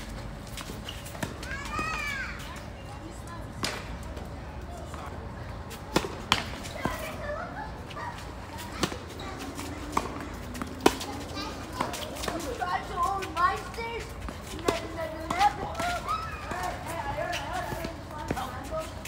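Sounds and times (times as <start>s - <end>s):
tennis balls struck by racquets: 3.5s - 4.3s, 5.7s - 7.2s, 8.6s - 12.6s.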